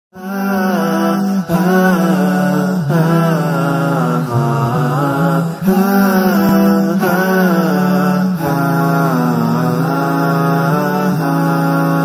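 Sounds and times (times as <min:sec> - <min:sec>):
person chanting a melody: 0:00.2 - 0:12.0.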